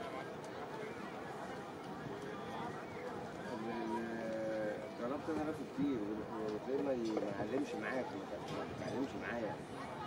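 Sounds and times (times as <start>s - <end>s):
background murmur: 0.0s - 10.0s.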